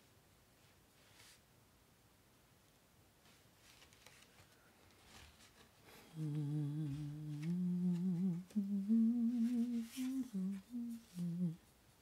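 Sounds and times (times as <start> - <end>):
woman humming slow tune: 6.1 - 11.7.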